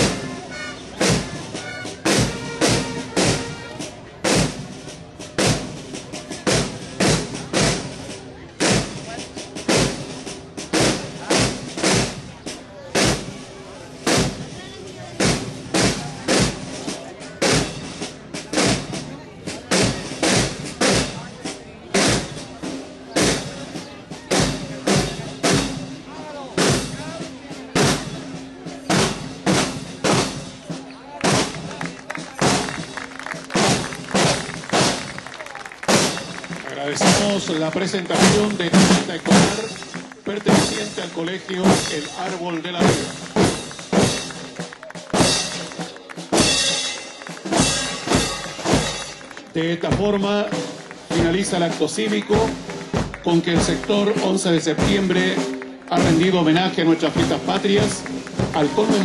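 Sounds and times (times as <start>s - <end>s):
snare drum cadence: 0.0s - 14.6s, 15.2s - 19.0s, 19.7s - 26.0s, 26.6s - 59.0s.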